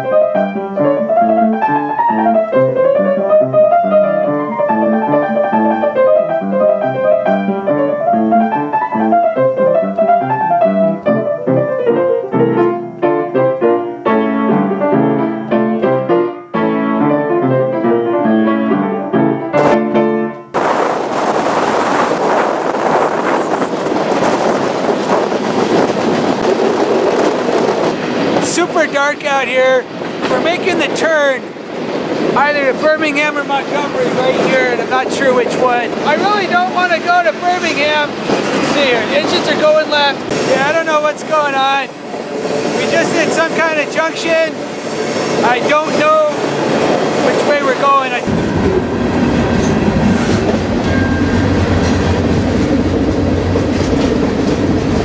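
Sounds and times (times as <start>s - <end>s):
piano-led music: 0.0s - 21.0s, 32.4s - 55.0s
wind rush from moving freight car: 20.4s - 55.0s
wavering high squeals: 46.4s - 52.3s.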